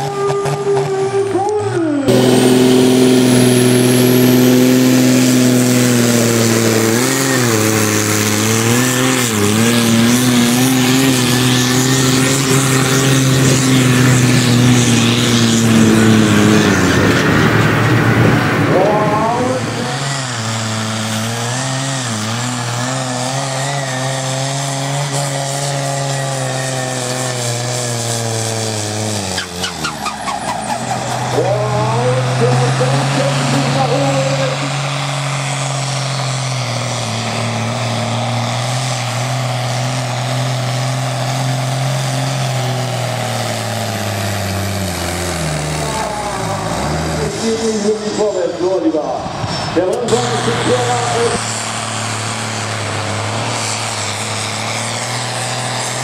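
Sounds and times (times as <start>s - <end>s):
tractor engine at full load: 0.0s - 56.0s.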